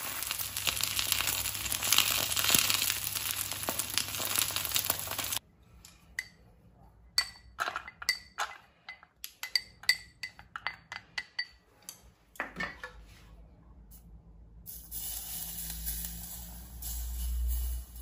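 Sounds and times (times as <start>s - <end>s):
egg sizzling in oil: 0.0s - 5.4s, 15.1s - 18.0s.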